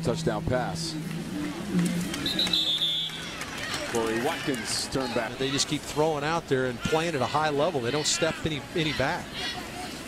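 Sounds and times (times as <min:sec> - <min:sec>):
referee's whistle blast: 0:02.2 - 0:03.2.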